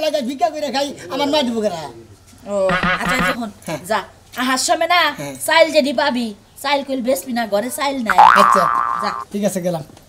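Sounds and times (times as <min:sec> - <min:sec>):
cartoon boing sound effect: 0:02.7 - 0:03.4, 0:08.1 - 0:09.2.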